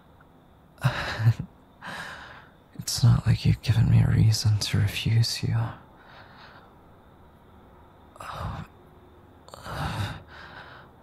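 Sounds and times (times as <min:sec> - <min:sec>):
man sighing: 0:00.8 - 0:02.3
soft out-breath: 0:09.6 - 0:11.0.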